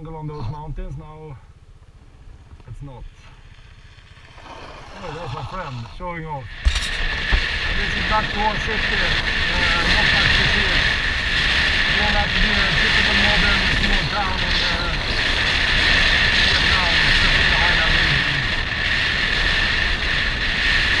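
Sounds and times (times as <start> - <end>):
scooter engine running: 1.4 - 6.0
wind buffeting microphone: 1.4 - 21.0.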